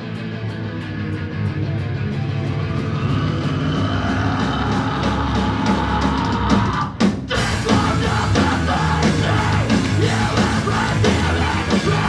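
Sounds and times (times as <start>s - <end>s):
hardcore band playing: 0.0s - 12.0s.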